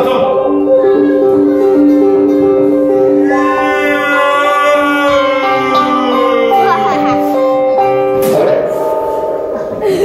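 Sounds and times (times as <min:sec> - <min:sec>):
slow guitar melody: 0:00.0 - 0:10.0.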